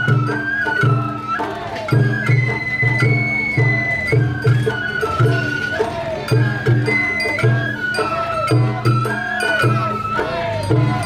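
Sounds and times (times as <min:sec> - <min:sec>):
bamboo flute playing: 0:00.0 - 0:11.0
low taiko drum strokes: 0:00.0 - 0:11.0.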